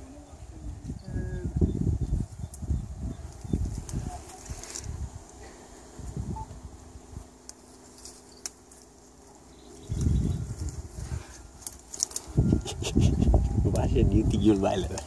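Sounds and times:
dry branches crackling: 2.1s - 15.0s
branches snapping: 3.3s - 5.4s, 7.3s - 12.4s, 14.5s - 15.0s.

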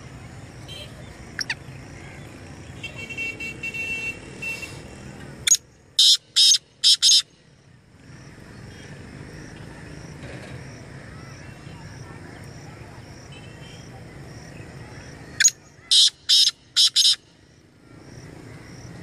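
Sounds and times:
francolin calling: 0.7s - 3.0s, 5.5s - 7.3s, 15.0s - 18.7s.

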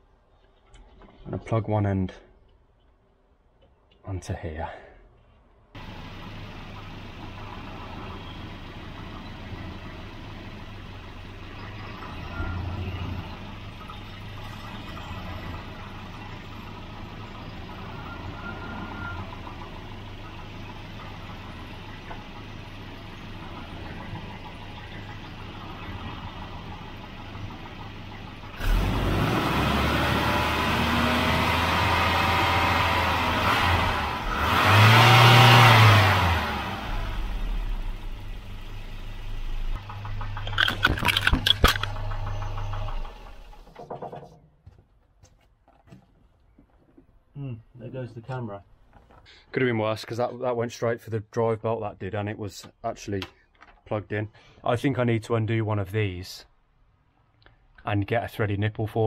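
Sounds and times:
car engine running and revving: 5.8s - 43.7s.

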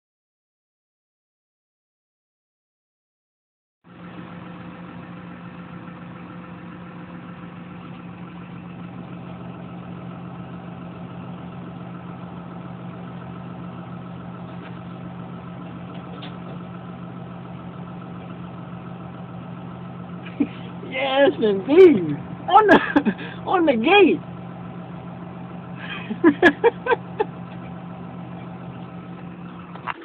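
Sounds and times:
heavy vehicle engine idling: 3.9s - 30.0s.

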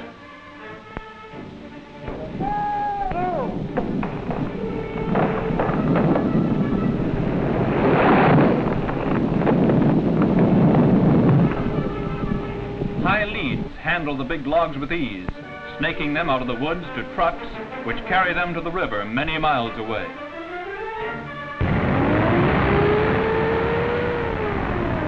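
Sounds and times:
tree crashing down: 2.1s - 12.3s, 21.6s - 25.0s
music score: 11.4s - 25.0s.

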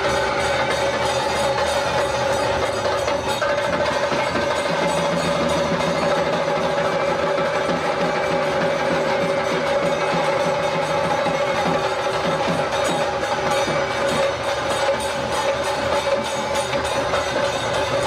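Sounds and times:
drumming: 0.0s - 18.0s
jingling percussion: 0.0s - 18.0s.

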